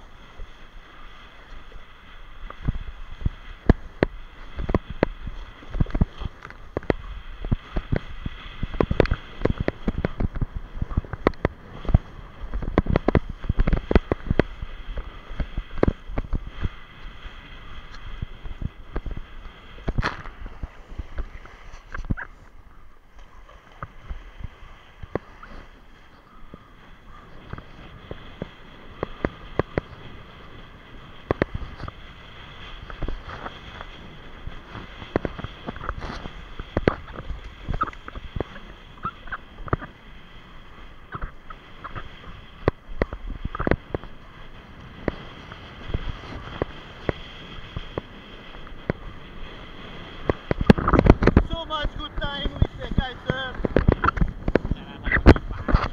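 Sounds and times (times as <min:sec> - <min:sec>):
wind rumble on microphone: 0:00.0 - 0:55.9.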